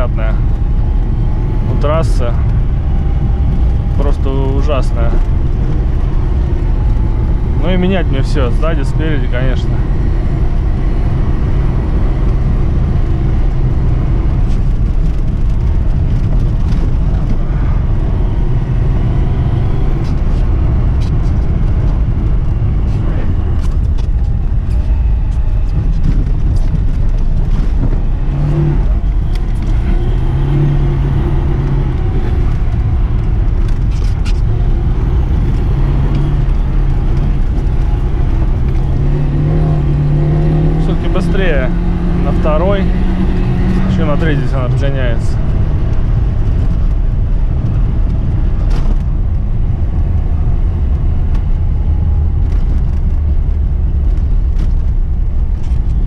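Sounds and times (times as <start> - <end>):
car engine revving: 0.0 - 56.0
road noise rumble: 0.0 - 56.0
suspension knocks over bumps: 12.0 - 56.0.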